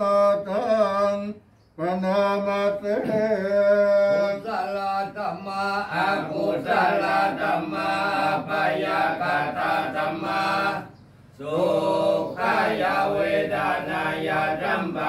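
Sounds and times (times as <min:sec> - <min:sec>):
monks chanting: 0:02.0 - 0:15.0.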